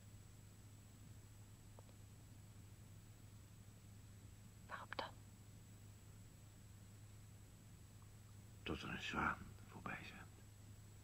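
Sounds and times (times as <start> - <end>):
old recording hum: 0.0 - 11.0
person whispering: 4.7 - 5.2, 9.8 - 10.4.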